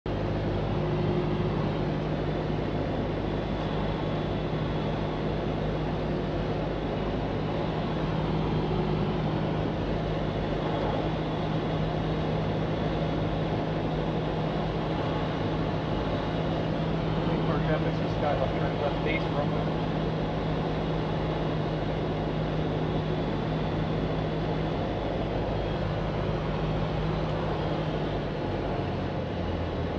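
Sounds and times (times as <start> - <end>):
airplane engine drone in cabin: 0.1 - 29.9.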